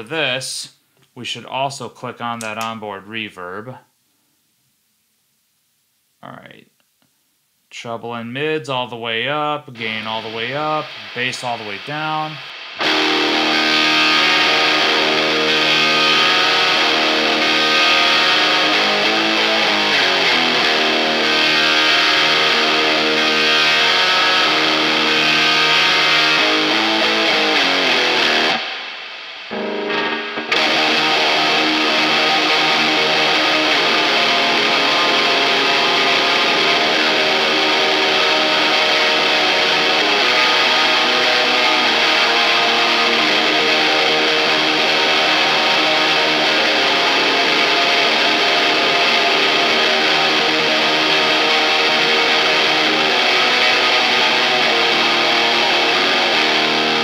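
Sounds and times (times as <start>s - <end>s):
amplifier noise: 9.1s - 57.0s
distorted electric guitar: 9.4s - 57.0s.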